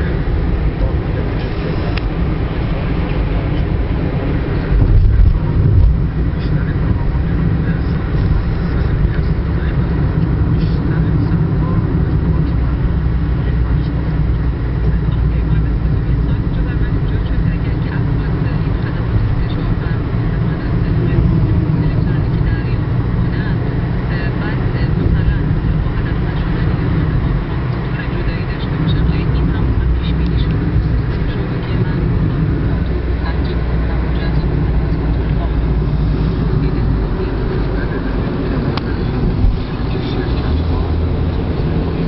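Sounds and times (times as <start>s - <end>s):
car road and engine noise: 0.0s - 42.0s.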